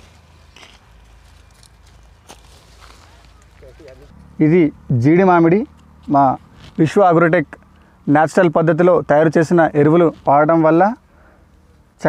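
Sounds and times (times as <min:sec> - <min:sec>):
rustling: 0:00.0 - 0:04.3
faint footsteps: 0:00.0 - 0:04.4.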